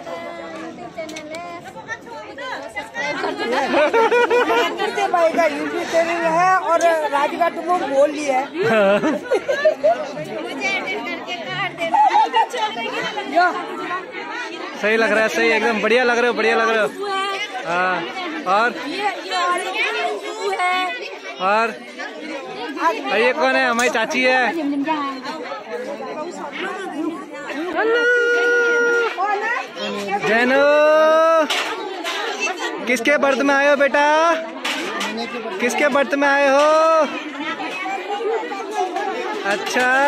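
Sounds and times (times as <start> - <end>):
group chatter: 0.0 - 40.0
people talking at once: 0.0 - 40.0.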